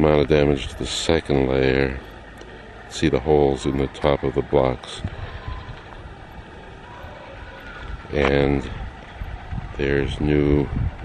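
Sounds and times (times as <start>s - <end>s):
low rumble: 0.6s - 11.0s.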